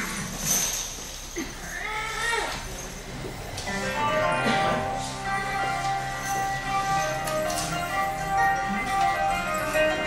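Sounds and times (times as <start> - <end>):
music: 3.6 - 10.0.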